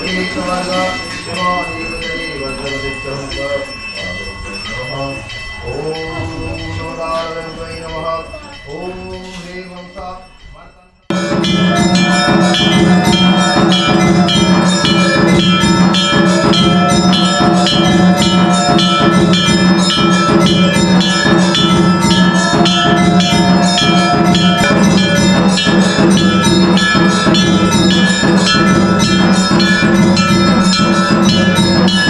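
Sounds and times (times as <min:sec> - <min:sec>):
bells ringing: 0:00.0 - 0:32.0
struck percussion beat: 0:11.1 - 0:32.0.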